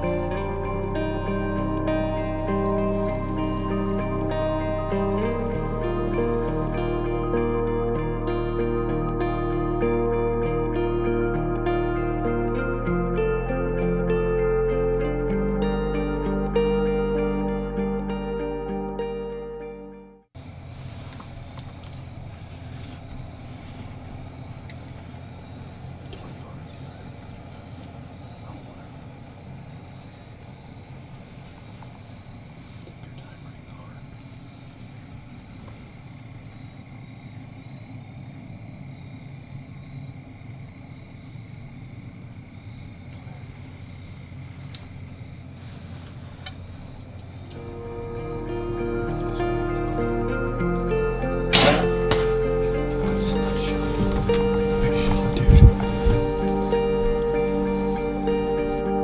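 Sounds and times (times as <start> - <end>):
high insect drone: 0.0 - 19.1, 20.4 - 59.0
low rumble: 0.0 - 19.4, 43.6 - 59.0.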